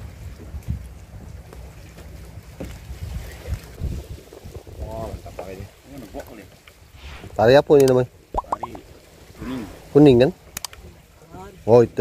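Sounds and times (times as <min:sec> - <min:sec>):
wind buffeting microphone: 0:00.0 - 0:05.9.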